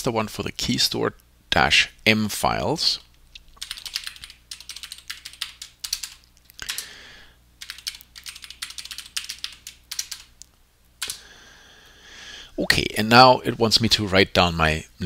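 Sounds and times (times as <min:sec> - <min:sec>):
computer keyboard typing: 0:03.6 - 0:06.8, 0:07.6 - 0:10.3.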